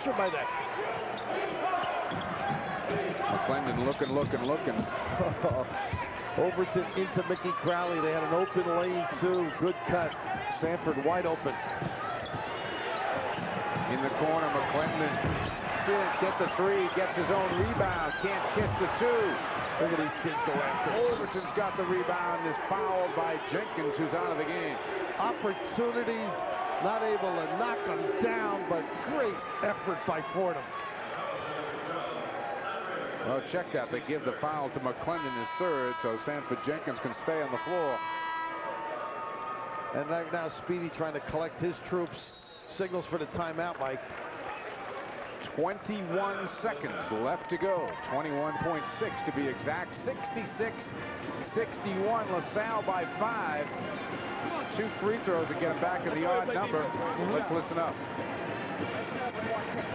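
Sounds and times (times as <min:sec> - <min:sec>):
din of crowd voices: 0:00.0 - 0:59.9
arena horn long tone: 0:35.2 - 0:36.5, 0:37.4 - 0:38.8.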